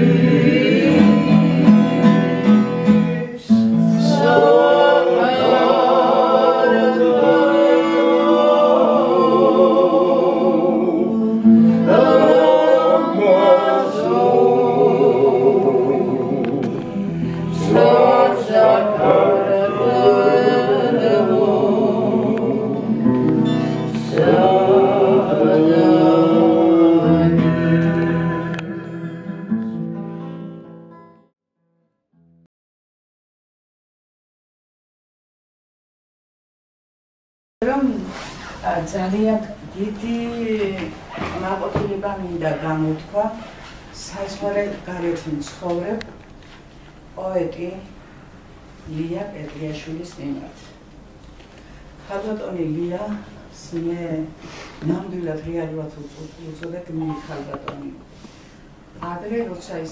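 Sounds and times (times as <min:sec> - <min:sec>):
group of people singing: 0:00.0 - 0:30.0
woman speaking: 0:52.1 - 0:58.0, 0:59.0 - 0:59.9.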